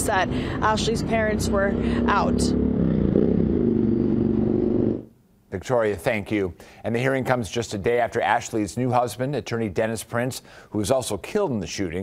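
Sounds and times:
vehicle engine running: 0.0 - 5.1.

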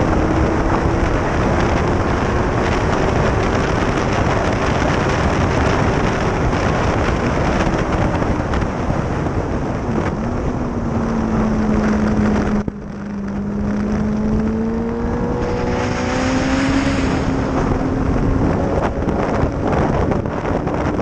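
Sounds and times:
motorcycle engine at speed: 0.0 - 21.0
wind rush on microphone: 0.0 - 21.0.

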